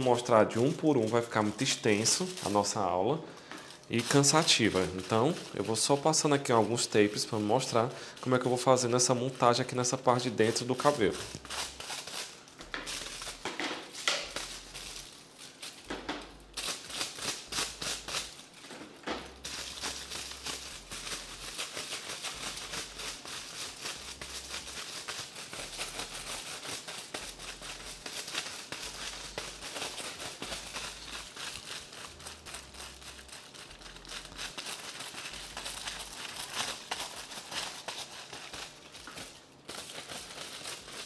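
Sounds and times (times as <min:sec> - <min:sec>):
aluminium foil crinkling: 0:00.0 - 0:41.0.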